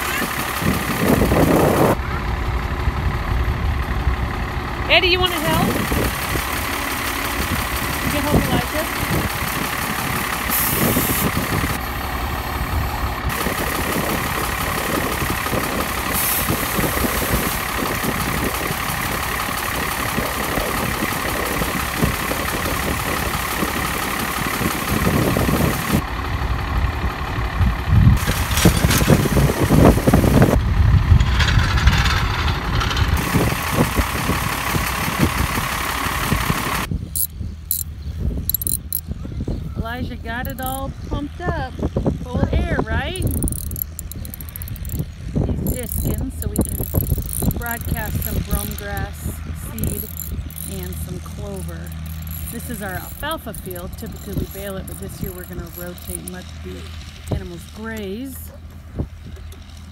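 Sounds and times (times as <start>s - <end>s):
motor running: 0.0s - 2.2s, 3.8s - 26.0s, 27.6s - 37.9s, 38.5s - 39.0s, 40.4s - 40.9s, 41.8s - 59.9s
knocks and rattles: 28.2s - 34.5s, 38.5s - 39.0s, 40.4s - 40.8s, 43.2s - 59.9s.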